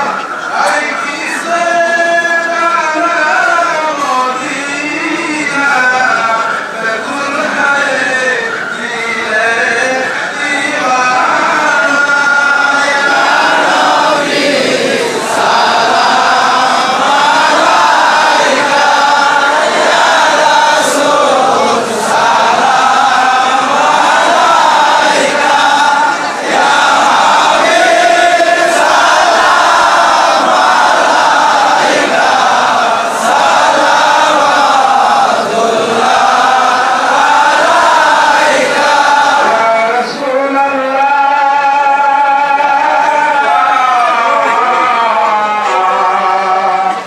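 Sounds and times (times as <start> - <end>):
crowd of men chanting: 0.0 - 47.0.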